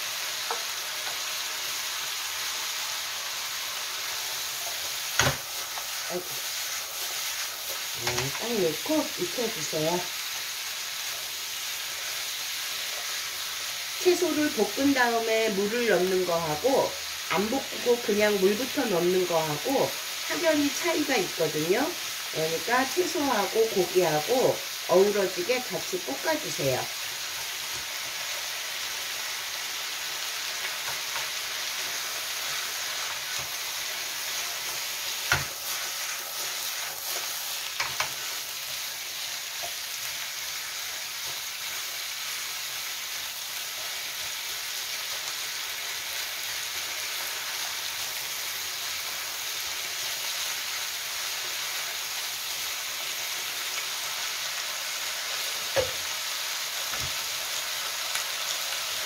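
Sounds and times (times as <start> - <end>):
food sizzling in a wok: 0.0 - 59.0.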